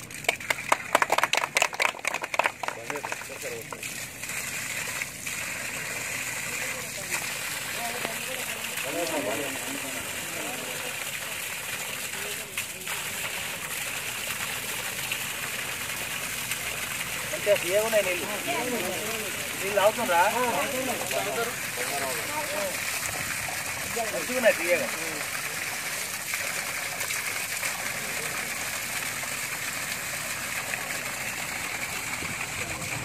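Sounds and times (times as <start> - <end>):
people clapping: 0.0 - 3.9
water pouring from pipe: 0.0 - 33.0
water splashing on ground: 0.0 - 33.0.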